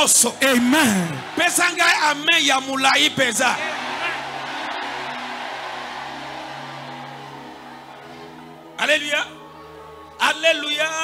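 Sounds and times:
crowd noise in a hall: 0.0s - 11.0s.

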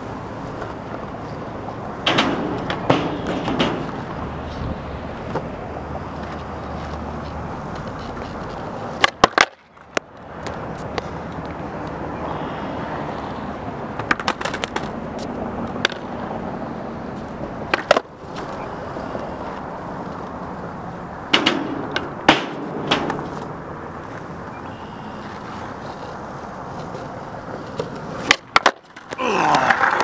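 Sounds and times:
skateboard wheels rolling on concrete: 0.0s - 30.0s
skateboard pops and clatter: 2.0s - 4.2s, 9.0s - 11.1s, 14.0s - 15.0s, 15.7s - 16.1s, 17.7s - 18.5s, 21.3s - 23.5s, 26.8s - 30.0s.

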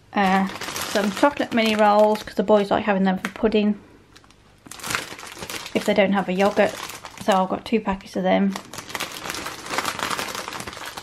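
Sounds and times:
plastic wrappers crinkling: 0.1s - 3.4s, 4.1s - 11.0s.

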